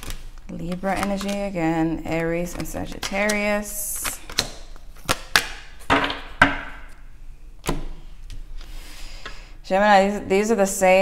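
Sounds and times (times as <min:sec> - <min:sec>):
cards rustling: 0:00.0 - 0:05.6.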